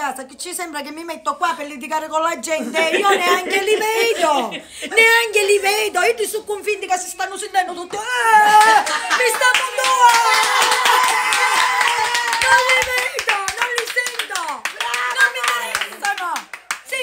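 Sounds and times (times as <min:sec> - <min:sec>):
woman exclaiming excitedly: 0:08.0 - 0:17.0
hand claps: 0:08.6 - 0:17.0.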